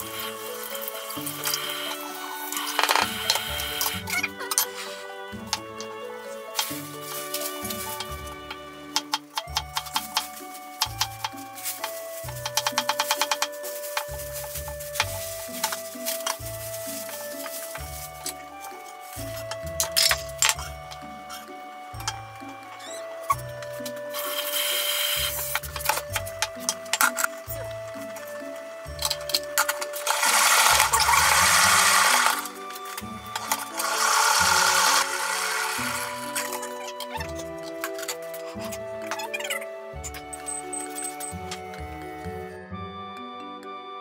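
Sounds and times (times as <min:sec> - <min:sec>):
background music: 0:00.0 - 0:44.0
running tap water: 0:29.6 - 0:36.7.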